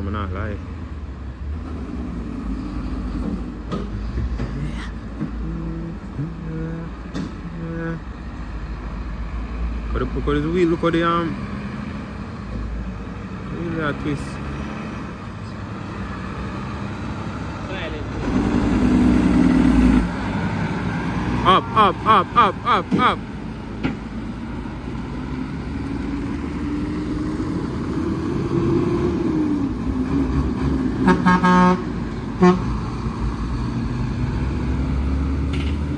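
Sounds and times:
truck diesel engine passing: 0:00.0 - 0:35.9.

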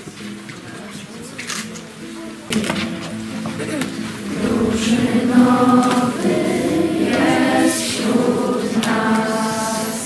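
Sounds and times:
choir singing slow song: 0:04.2 - 0:10.0.

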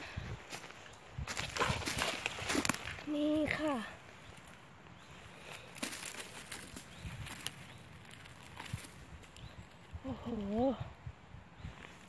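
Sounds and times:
dry leaves crackling and rustling: 0:01.3 - 0:03.8, 0:05.4 - 0:09.4.

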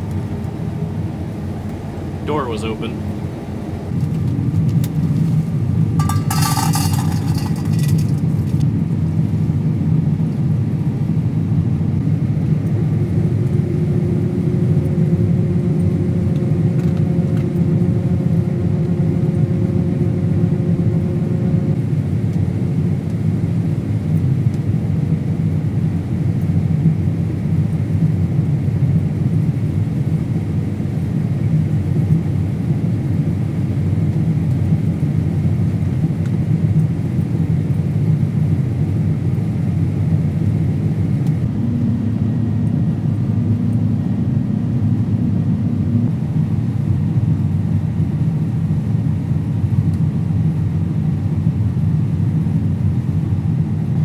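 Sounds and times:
combine harvester engine drone: 0:00.0 - 0:54.0
faint steady tone: 0:41.5 - 0:46.6.

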